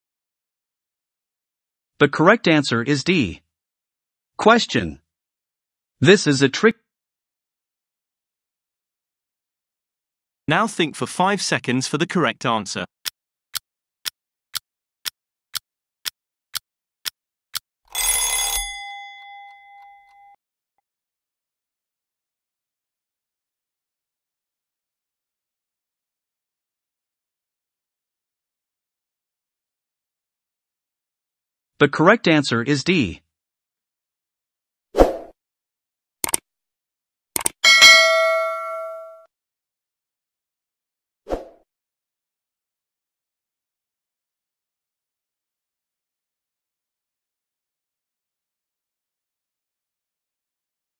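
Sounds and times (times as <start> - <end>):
bell ringing: 17.9 - 20.4, 37.6 - 39.3
clicks: 36.2 - 36.4, 37.4 - 37.6.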